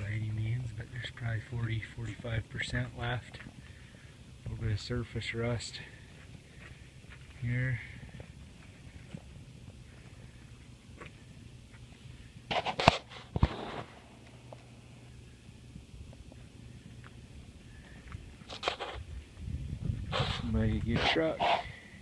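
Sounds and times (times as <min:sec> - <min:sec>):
faint low hum: 0:00.0 - 0:22.0
footsteps: 0:05.5 - 0:14.7, 0:16.1 - 0:21.6.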